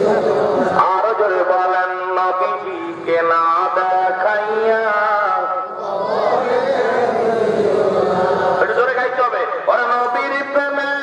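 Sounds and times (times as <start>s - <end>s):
man chanting into a microphone: 0.0s - 5.8s, 8.4s - 11.0s.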